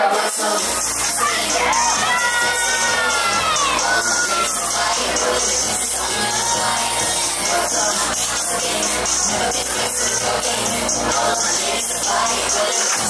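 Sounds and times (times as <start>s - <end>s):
crowd cheering and screaming: 0.0s - 8.0s
dance track over loudspeakers: 0.0s - 13.0s.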